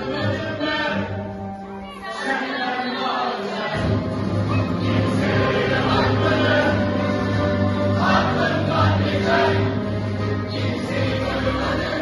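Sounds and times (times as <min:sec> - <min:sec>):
choir singing with music: 0:00.0 - 0:12.0.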